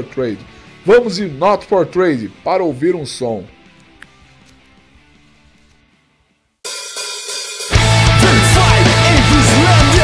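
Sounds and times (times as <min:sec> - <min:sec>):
cymbals and hi-hat: 0:06.7 - 0:10.0.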